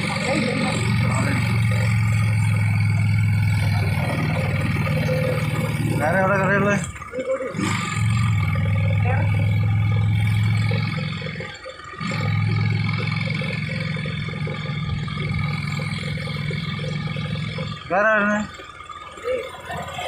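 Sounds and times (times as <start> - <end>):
motorcycle engine running: 0.0 - 20.0
road noise: 0.0 - 20.0
wind: 0.0 - 20.0.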